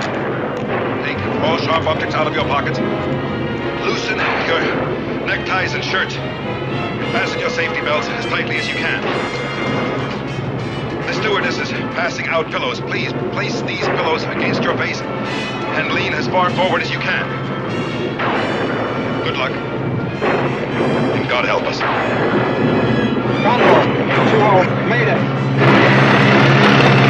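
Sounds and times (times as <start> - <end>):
aircraft engines droning: 0.0 - 27.0
dramatic music: 0.0 - 27.0.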